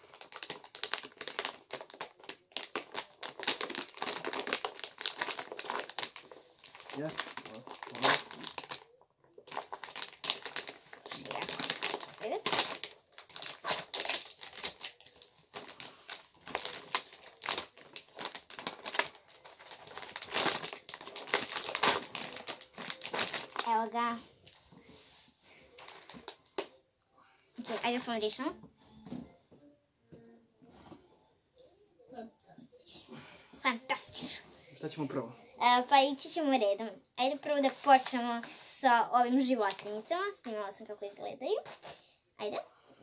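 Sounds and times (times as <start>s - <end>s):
packaging crinkling: 0.0s - 23.9s, 25.7s - 26.7s.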